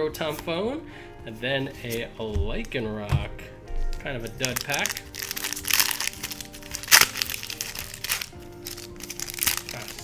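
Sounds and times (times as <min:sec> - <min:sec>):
background music: 0:00.0 - 0:10.0
foil wrapper crinkling and tearing: 0:04.3 - 0:10.0.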